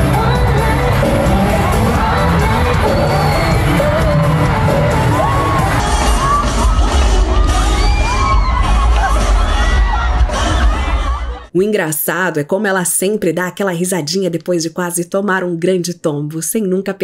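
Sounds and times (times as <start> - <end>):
crowd cheering and screaming: 0.0 - 11.5
loud concert music with heavy bass: 0.0 - 11.5.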